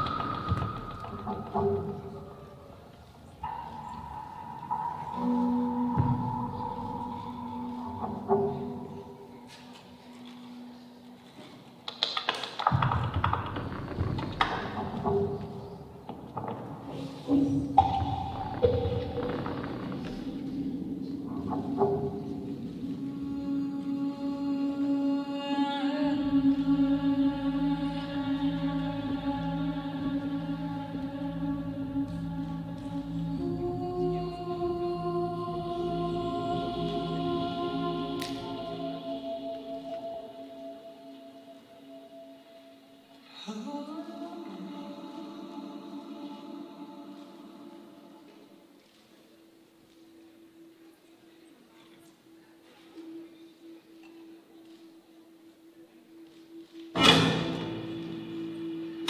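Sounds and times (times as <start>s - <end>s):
slow ambient music: 0.0s - 59.0s.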